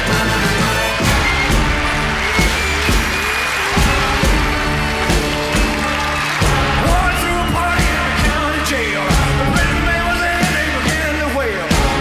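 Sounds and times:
rock and roll band music: 0:00.0 - 0:12.0
steady drum beat: 0:00.0 - 0:12.0.

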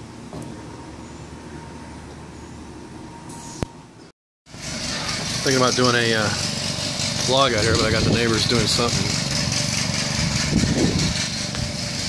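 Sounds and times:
small gasoline engine running: 0:04.5 - 0:12.0.

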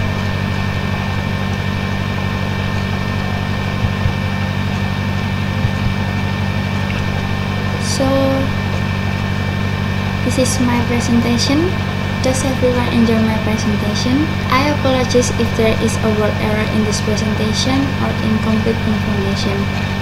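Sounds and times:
low hum with hiss: 0:00.0 - 0:20.0.

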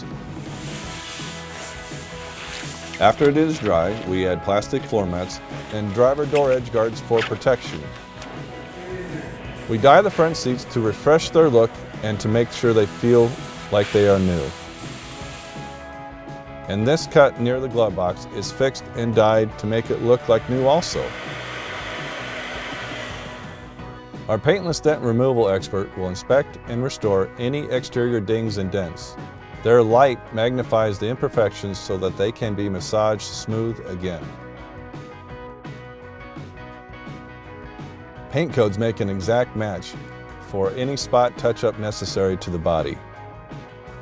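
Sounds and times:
soft background music: 0:00.0 - 0:44.0
spray gun hissing: 0:00.3 - 0:04.0, 0:08.4 - 0:11.0, 0:12.3 - 0:15.9, 0:20.6 - 0:23.9
cloth rubbing on dashboard: 0:00.3 - 0:04.2, 0:07.2 - 0:10.6, 0:12.6 - 0:15.9.

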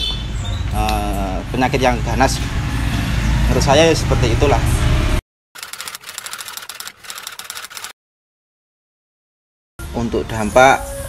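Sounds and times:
rapid keystroke clicks: 0:05.6 - 0:07.9.

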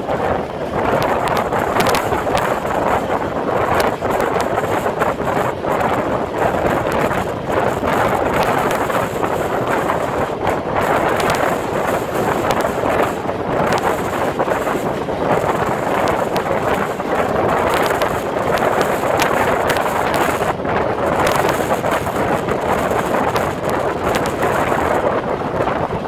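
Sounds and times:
train wheel clicks: 0:00.0 - 0:25.9
train coaches rumbling on rails: 0:00.0 - 0:26.0
wind rushing over microphone: 0:00.0 - 0:26.0.

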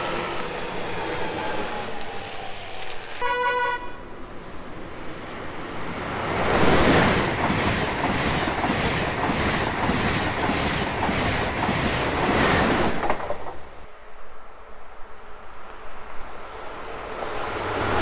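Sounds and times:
high-speed train rushing: 0:00.0 - 0:18.0
train horn blast: 0:03.1 - 0:04.1
train wheel clatter: 0:06.6 - 0:13.9.

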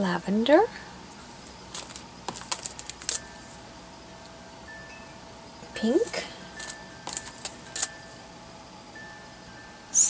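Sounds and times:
plastic bag crinkling: 0:01.4 - 0:03.6, 0:06.6 - 0:08.0
faint steady tone: 0:03.0 - 0:10.0.

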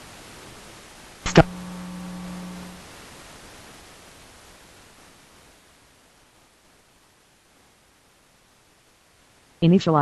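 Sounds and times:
low steady hum with overtones: 0:00.0 - 0:10.0
steady background hiss: 0:00.0 - 0:10.0.

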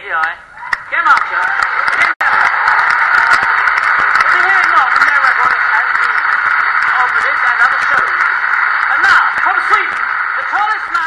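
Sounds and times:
audience clapping: 0:00.9 - 0:11.0.

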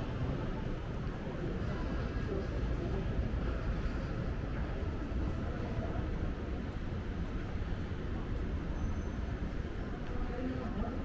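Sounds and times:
city background rumble: 0:00.0 - 0:11.0.

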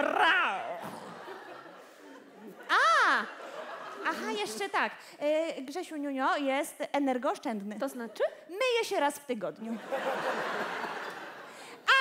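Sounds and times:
audience laughing: 0:00.8 - 0:04.8, 0:09.8 - 0:11.6.

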